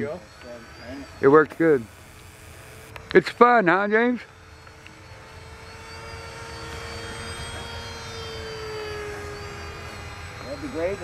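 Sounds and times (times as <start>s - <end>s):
model airplane motor whining: 0.0s - 11.0s.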